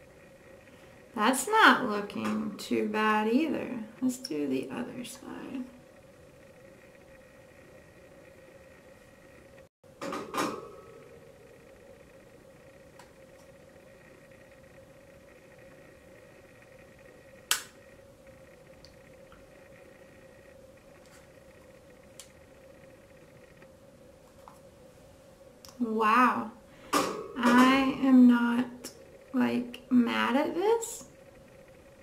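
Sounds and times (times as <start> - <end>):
low electrical hum: 0.0 - 32.0
sharp click: 17.5 - 17.8.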